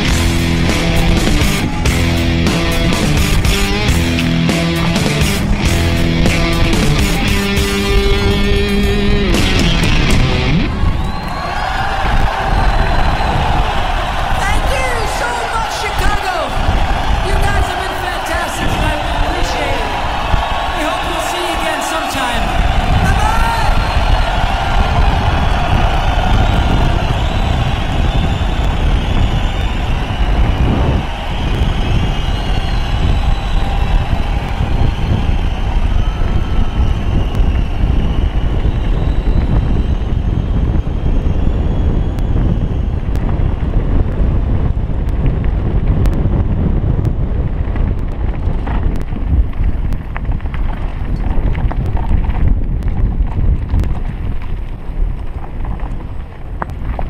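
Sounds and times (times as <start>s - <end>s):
wind buffeting microphone: 5.3s - 57.0s.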